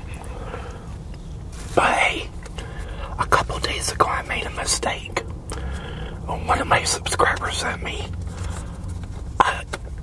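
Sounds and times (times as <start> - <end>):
low rumble: 0.0 - 10.0
man whispering: 1.7 - 8.5, 9.4 - 9.8.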